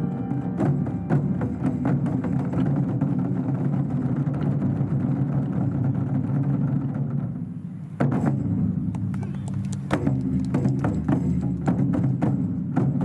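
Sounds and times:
taiko drum roll: 0:00.0 - 0:09.2, 0:09.8 - 0:13.0.

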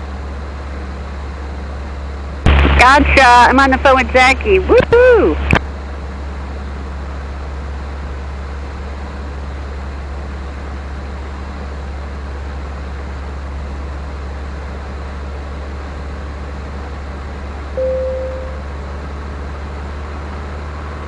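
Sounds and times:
aircraft engine and propeller droning: 0:00.0 - 0:21.0
short beep: 0:17.8 - 0:18.7.

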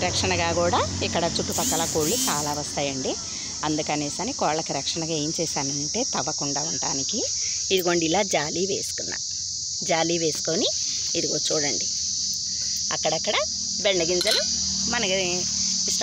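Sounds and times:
crickets chirring: 0:00.0 - 0:16.0
person talking: 0:13.0 - 0:16.0.

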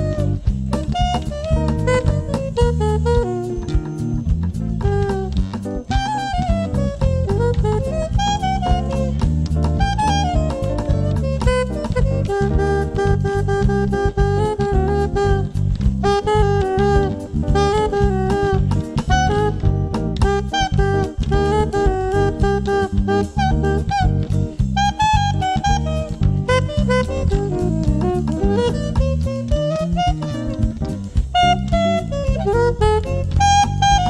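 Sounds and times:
jazz quartet playing: 0:00.0 - 0:34.0
soprano saxophone: 0:00.0 - 0:34.0.

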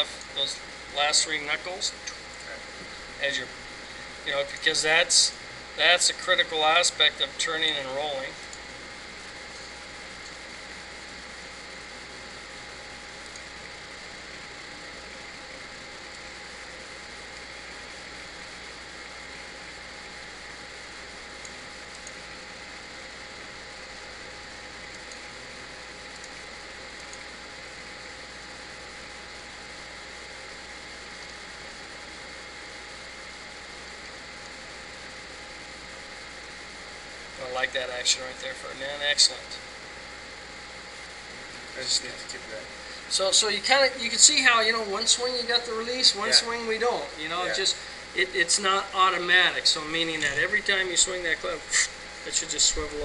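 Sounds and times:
faint hum tones: 0:00.0 - 0:53.0.

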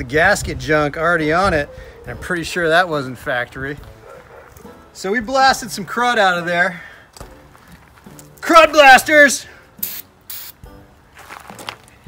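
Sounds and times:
faint background music: 0:00.0 - 0:12.0
aerosol spray can hiss: 0:09.8 - 0:10.7.

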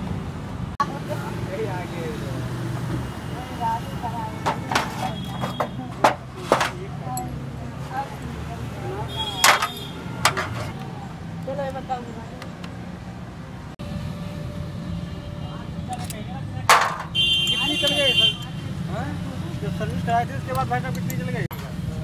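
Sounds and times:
street traffic hum: 0:00.0 - 0:22.0
metal tools clinking: 0:20.5 - 0:21.8.

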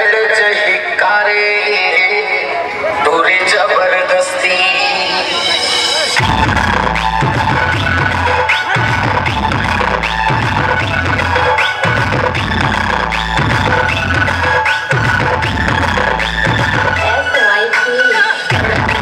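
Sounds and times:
loud dance music: 0:00.0 - 0:19.0
heavy pulsing bass line: 0:04.8 - 0:17.5, 0:18.5 - 0:19.0.

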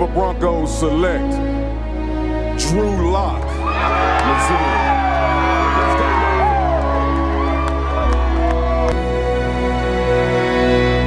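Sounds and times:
background music: 0:00.0 - 0:11.0
people cheering and whooping: 0:03.6 - 0:09.4.

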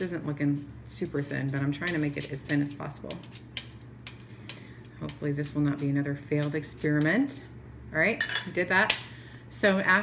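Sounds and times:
metal spoon scraping foil: 0:01.0 - 0:06.8.

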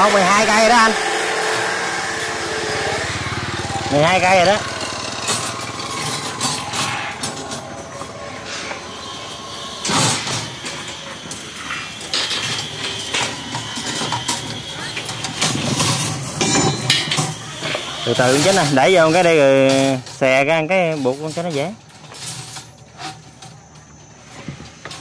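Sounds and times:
small motorbike engine passing: 0:00.0 - 0:16.4.

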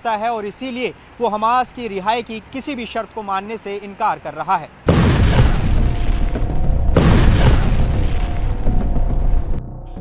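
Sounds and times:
explosions with low rumble: 0:04.9 - 0:09.9.

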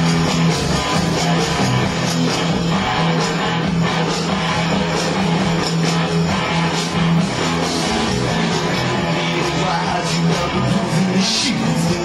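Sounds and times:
instrumental rock music: 0:00.0 - 0:12.0.

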